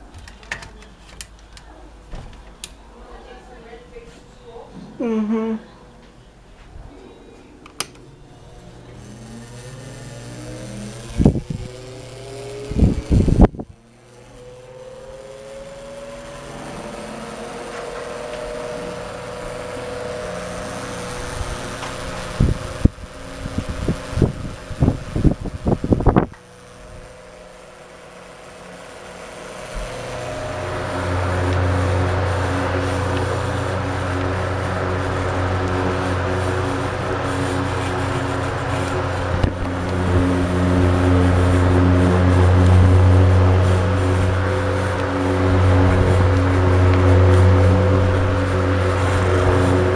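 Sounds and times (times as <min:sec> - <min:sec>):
electric fan motor hum: 0:00.0 - 0:49.9
rush of air from fan: 0:09.1 - 0:49.9.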